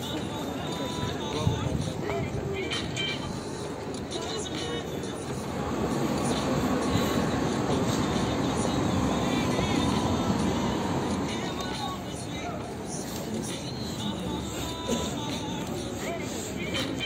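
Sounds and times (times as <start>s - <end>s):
faint voices of people: 0.0s - 17.0s
traffic rumble: 0.0s - 17.0s.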